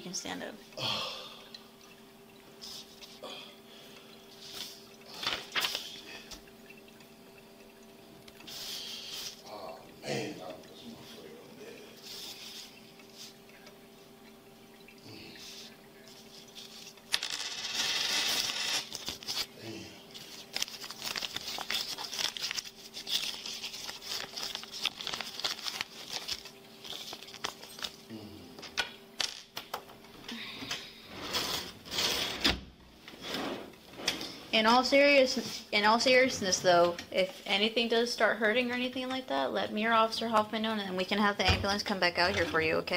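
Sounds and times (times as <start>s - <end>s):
low equipment hum: 0.0s - 42.9s
rustling and clicks of handling: 20.2s - 28.0s.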